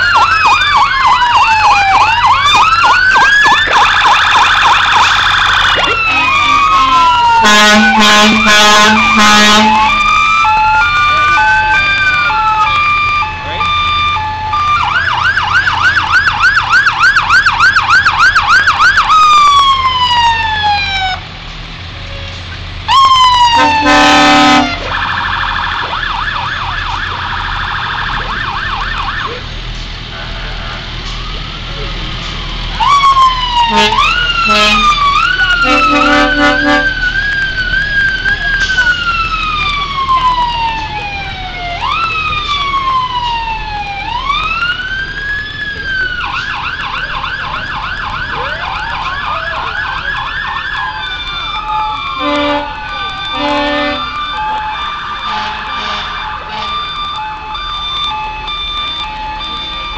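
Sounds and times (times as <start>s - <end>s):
fire truck sirens: 0.0s - 59.9s
loud horn blasts: 6.0s - 10.2s, 23.5s - 24.9s, 33.6s - 37.1s, 52.2s - 54.2s, 55.2s - 56.8s.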